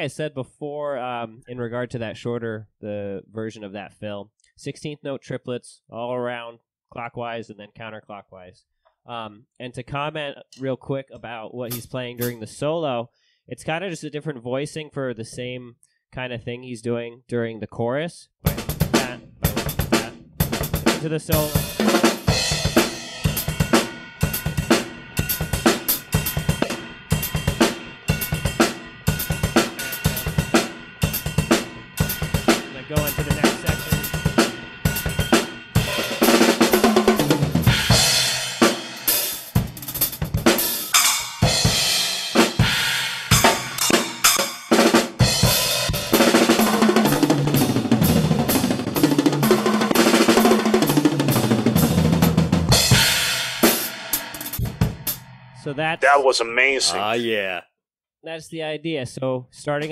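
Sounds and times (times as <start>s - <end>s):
drum kit playing: 11.7s - 12.4s, 18.5s - 55.4s.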